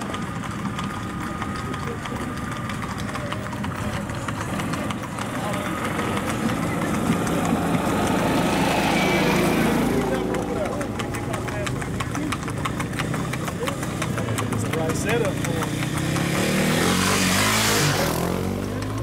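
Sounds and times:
horse hooves clopping on pavement: 0.0 - 19.0
small vehicle engine running: 0.0 - 19.0.

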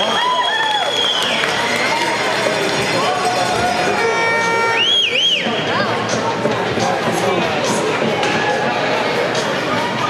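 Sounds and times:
crowd shouting and talking: 0.0 - 10.0
high held tone: 3.6 - 5.8.

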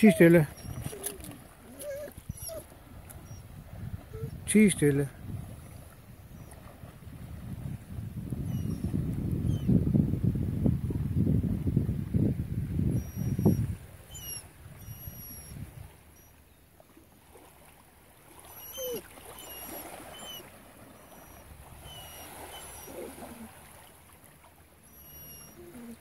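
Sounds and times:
horse wading through water: 0.0 - 9.4, 13.2 - 26.0.

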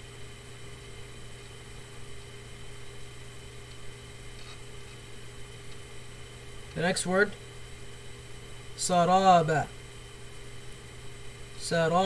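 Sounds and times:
electrical hum and hiss: 0.0 - 12.0.

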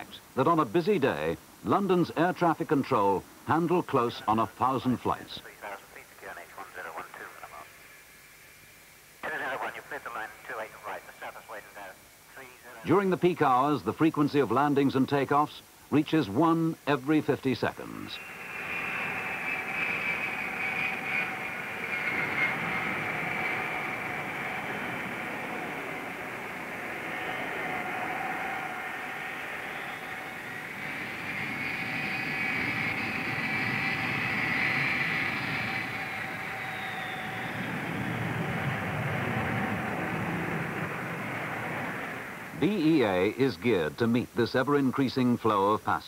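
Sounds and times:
jet engines roaring: 9.2 - 12.1, 17.4 - 43.4
high-pitched engine whine: 17.7 - 43.4.

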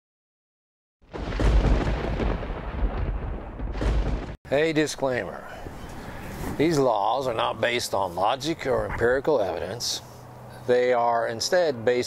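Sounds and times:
loud deep rumble: 1.1 - 4.4.

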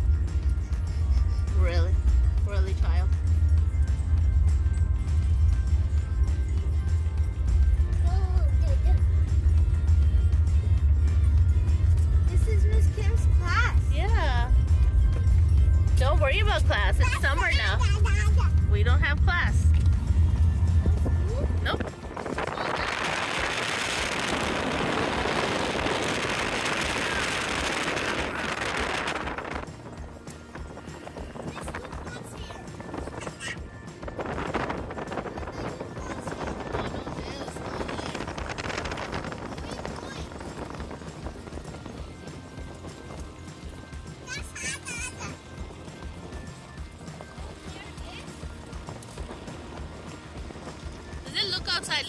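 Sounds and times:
car cabin road rumble: 0.0 - 52.0
music playing: 0.0 - 52.0.

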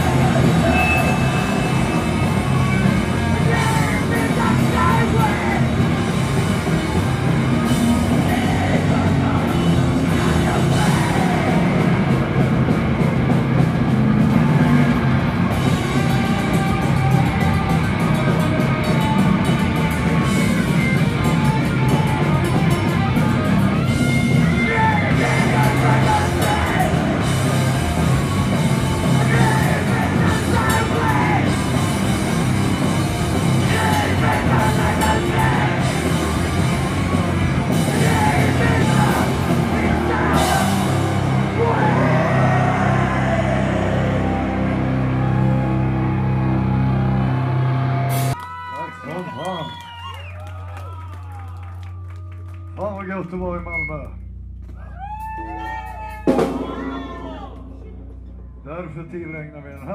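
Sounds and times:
drum kit with cymbals: 0.0 - 42.5, 55.2 - 58.2
distorted guitars: 0.0 - 48.4, 53.0 - 59.9
bass: 0.0 - 59.9
cymbal crash: 56.3 - 58.5.

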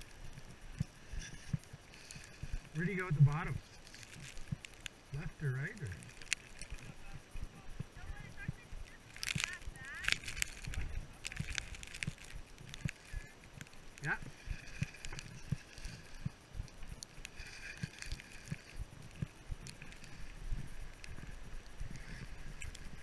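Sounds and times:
skis scraping through snow: 0.0 - 23.0
wind rumbling on microphone: 0.0 - 23.0.

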